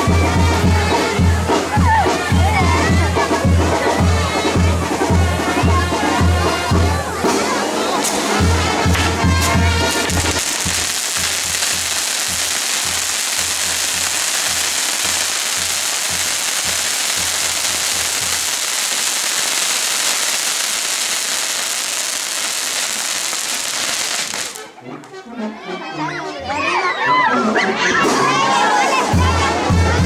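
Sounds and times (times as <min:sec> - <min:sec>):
fireworks hissing rush: 0:00.0 - 0:24.8.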